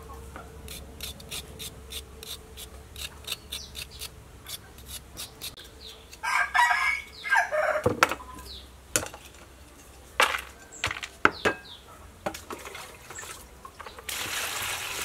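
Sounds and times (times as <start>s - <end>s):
knife scraping root skin: 0.7s - 6.3s
rooster crowing: 6.2s - 8.0s.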